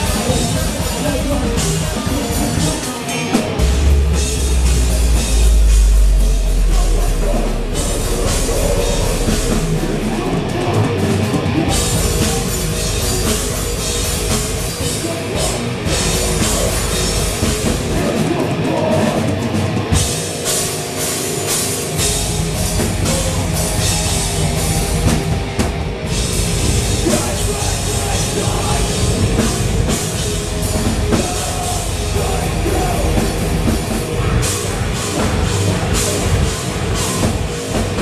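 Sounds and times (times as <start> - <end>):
drums and cymbals: 0.0 - 38.0
live metal band playing: 0.0 - 38.0
cymbal crashes: 3.6 - 15.1
deep heavy low note: 3.6 - 18.0.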